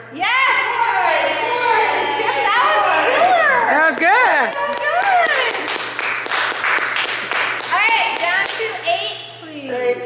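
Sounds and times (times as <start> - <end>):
people clapping: 3.6 - 8.8.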